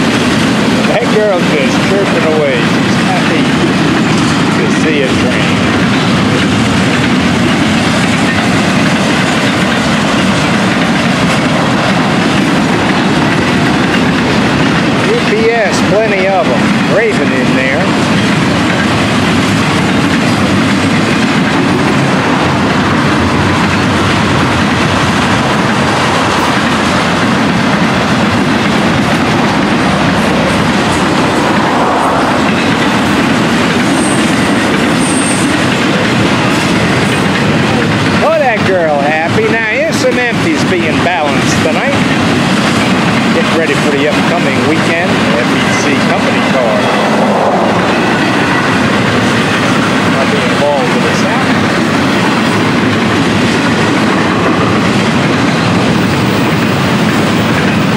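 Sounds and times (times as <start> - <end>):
freight train passing: 0.0 - 57.9.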